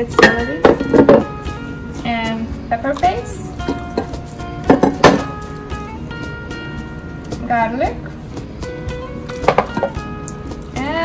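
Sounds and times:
background music: 0.0 - 11.0
hands kneading marinade: 1.5 - 11.0.

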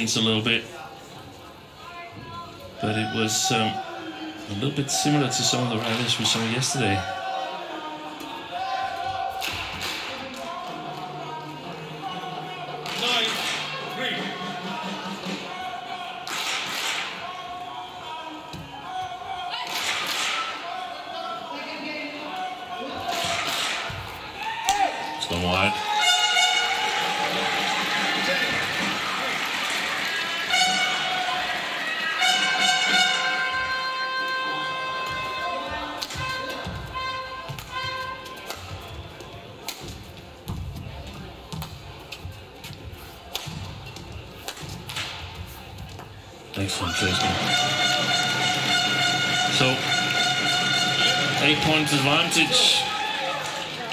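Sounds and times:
horn-like tones with music: 25.8 - 29.2, 30.2 - 38.2, 46.9 - 52.9
hall noise: 46.6 - 53.1.

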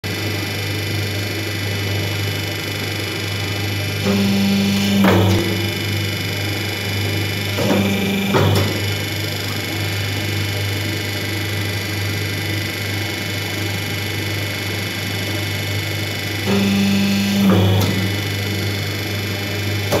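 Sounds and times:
machine motor and pump humming: 0.0 - 20.0
louder hydraulic hum: 3.0 - 10.8, 14.8 - 20.0.

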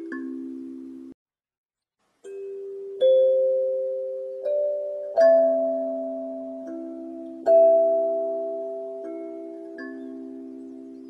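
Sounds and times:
kalimba melody: 0.0 - 1.2, 2.2 - 11.0.

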